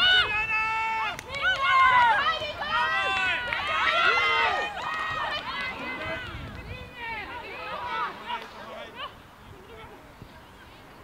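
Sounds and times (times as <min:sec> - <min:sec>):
people shouting: 0:00.0 - 0:09.1
people cheering: 0:00.0 - 0:09.2.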